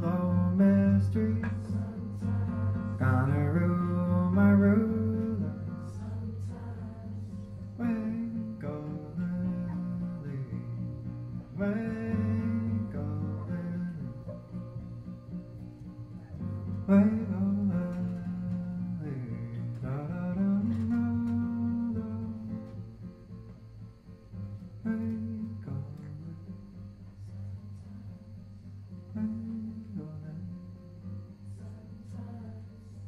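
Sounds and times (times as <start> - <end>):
man singing slow phrases: 0.0 - 10.9
plucked acoustic guitar: 0.0 - 33.0.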